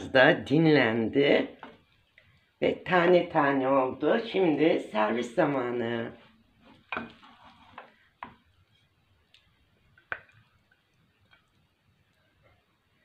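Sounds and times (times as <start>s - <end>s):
spoon scraping rice from pan: 6.6s - 9.0s
spoon knocking on pan and plate: 6.8s - 8.5s, 10.0s - 10.4s.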